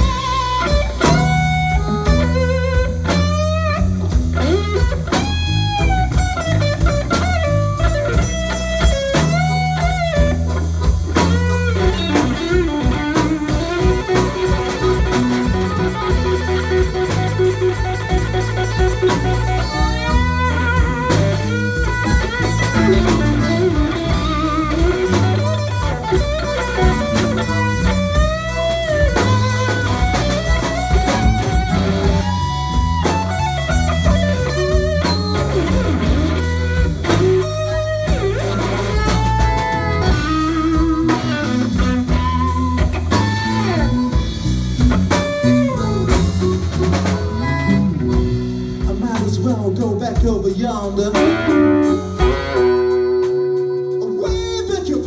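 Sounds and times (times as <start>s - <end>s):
bass guitar: 0.0s - 55.0s
drum kit: 0.0s - 55.0s
electric guitar: 0.0s - 55.0s
harmonica: 11.2s - 49.0s.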